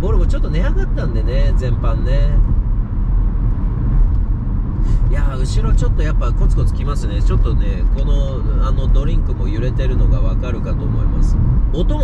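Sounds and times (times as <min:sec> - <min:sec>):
car road noise rumble: 0:00.0 - 0:12.0.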